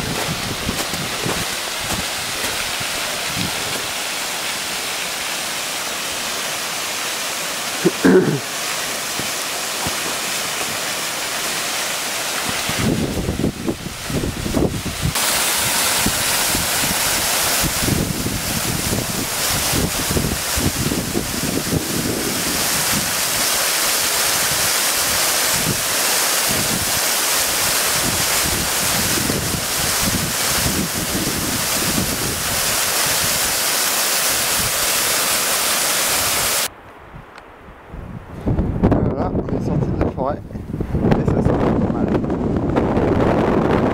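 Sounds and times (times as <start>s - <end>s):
wind buffeting microphone: 0.0s - 4.0s, 12.4s - 23.5s, 27.7s - 33.6s, 37.0s - 43.9s
waterfall rushing over rocks: 0.0s - 36.7s.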